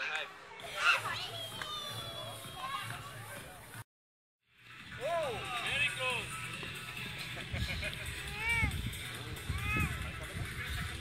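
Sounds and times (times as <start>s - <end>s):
adults talking: 0.0s - 3.8s, 4.8s - 11.0s
children playing and calling out: 0.6s - 3.4s, 8.0s - 11.0s.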